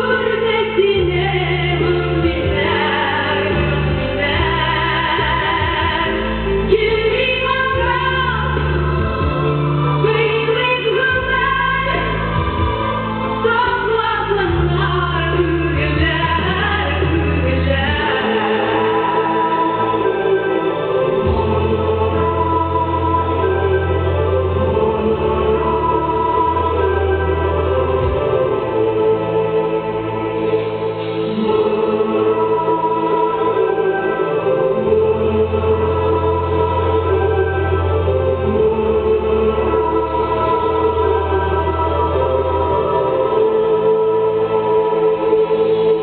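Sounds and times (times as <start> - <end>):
instrumental accompaniment: 0.0 - 46.0
woman singing: 0.0 - 46.0.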